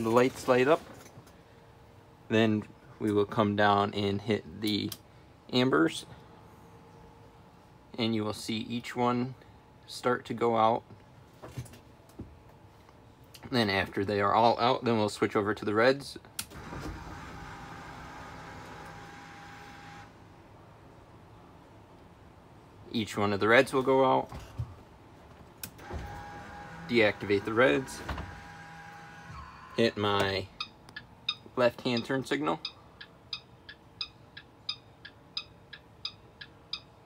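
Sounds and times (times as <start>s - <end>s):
low steady hum: 0.0s - 37.0s
turn signal flasher ticking: 30.6s - 37.0s.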